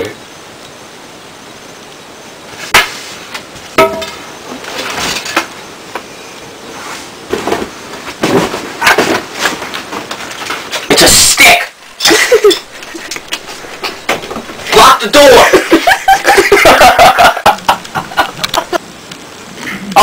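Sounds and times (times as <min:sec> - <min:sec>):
sharp knocks: 0:03.8 - 0:04.2
irregular rustling: 0:06.8 - 0:11.0.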